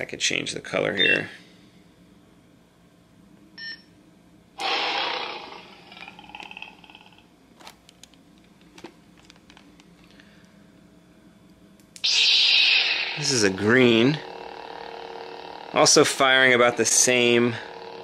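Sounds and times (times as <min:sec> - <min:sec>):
lightsaber whoosh: 0:12.0 - 0:14.2.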